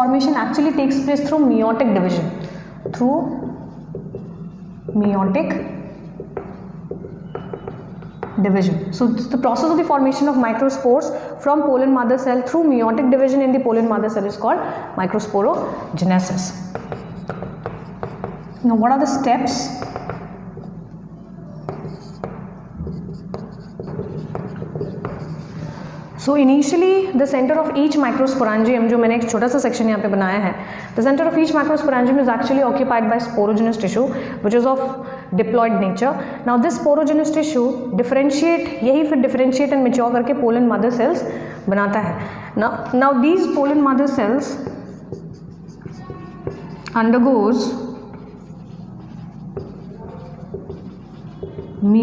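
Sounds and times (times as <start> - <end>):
marker writing on whiteboard: 2.1 - 10.8, 15.2 - 26.2, 42.8 - 52.0.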